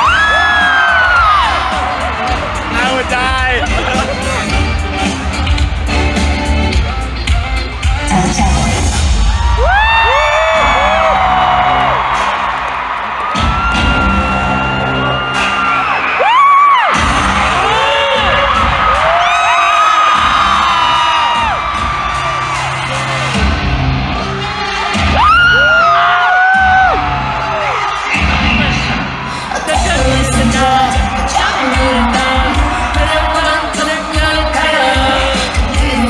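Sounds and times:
heavy bass beat: 0:00.0 - 0:12.3, 0:16.9 - 0:19.3, 0:20.1 - 0:36.0
crowd cheering and screaming: 0:00.0 - 0:36.0
woman singing: 0:29.5 - 0:36.0.

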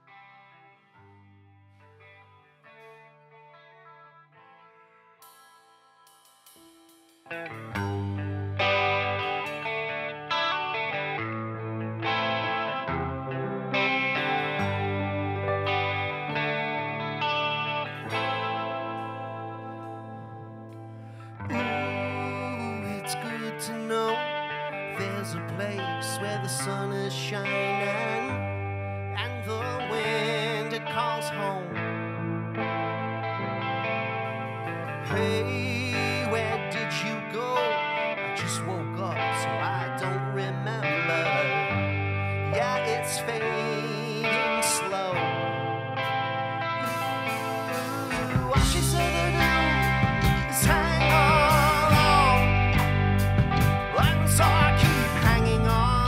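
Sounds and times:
electric guitar: 0:00.0 - 0:56.0
cymbal crashes: 0:05.2 - 0:08.2
live rock band playing: 0:06.2 - 0:56.0
keyboard: 0:06.7 - 0:56.0
man singing: 0:07.5 - 0:08.5, 0:21.5 - 0:28.5, 0:29.2 - 0:31.9, 0:35.0 - 0:41.8, 0:42.4 - 0:45.8, 0:46.9 - 0:53.0, 0:53.6 - 0:56.0
held keyboard chord: 0:46.8 - 0:56.0.

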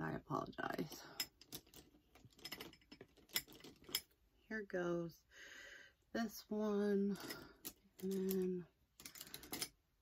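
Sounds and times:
makeup brushes rattling: 0:00.8 - 0:04.2, 0:07.1 - 0:09.8.

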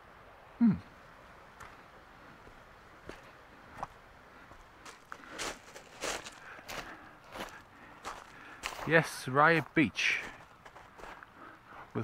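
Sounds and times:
footsteps crunching on pebbles: 0:02.4 - 0:11.3.

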